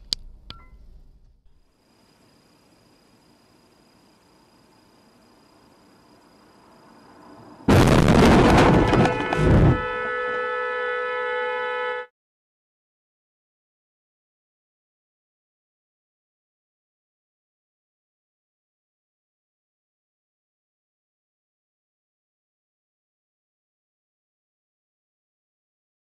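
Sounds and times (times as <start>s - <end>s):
low road hum: 4.1s - 11.8s
loud collision crash: 7.7s - 10.1s
car horn held: 8.5s - 12.1s.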